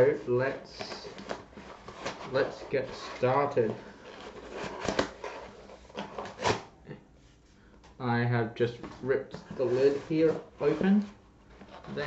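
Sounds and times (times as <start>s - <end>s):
cardboard tearing: 4.0s - 6.6s.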